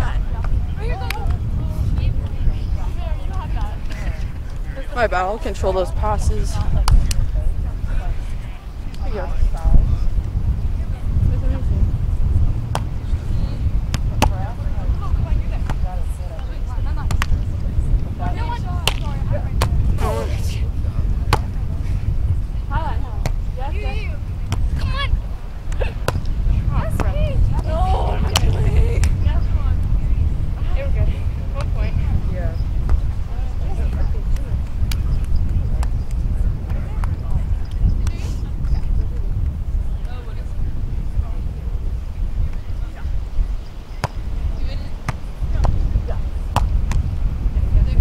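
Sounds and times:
wind rumble on microphone: 0.0 - 48.0
faint voices: 19.9 - 21.0.

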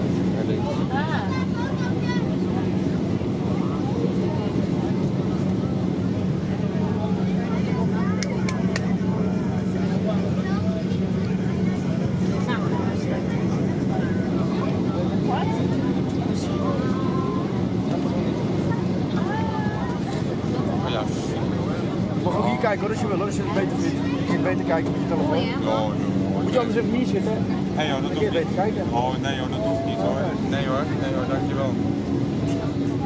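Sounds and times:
constant low hum: 0.0 - 33.0
faint passenger voices: 0.0 - 33.0
jet engine and airflow drone: 0.0 - 33.0.

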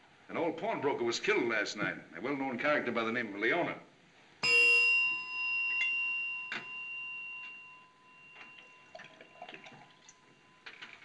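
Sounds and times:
desk call bell ringing: 4.4 - 11.0.

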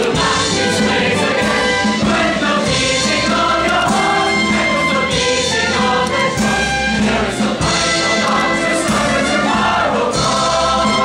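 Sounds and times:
chorus singing together: 0.0 - 11.0
pit orchestra: 0.0 - 11.0.

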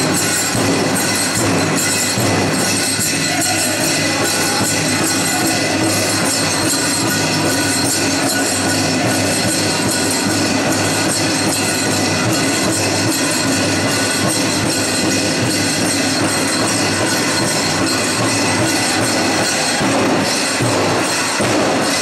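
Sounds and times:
drumming: 0.0 - 22.0
jingling of regalia: 0.0 - 22.0.

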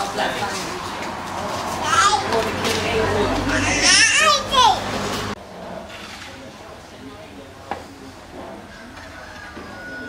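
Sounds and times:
indistinct background voices: 0.0 - 9.0
children's voices: 1.7 - 5.3.

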